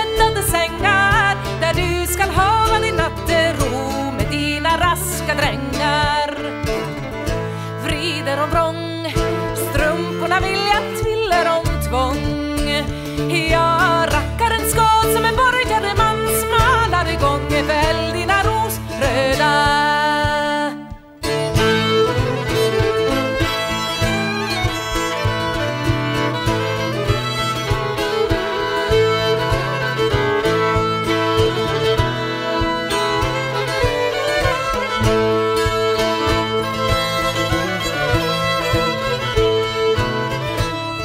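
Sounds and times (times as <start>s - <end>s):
fiddle playing folk tune: 0.0s - 41.0s
plucked string accompaniment: 0.0s - 41.0s.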